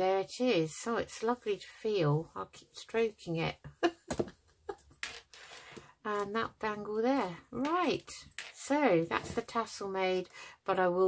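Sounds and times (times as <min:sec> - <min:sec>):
person laughing: 0:03.8 - 0:04.9.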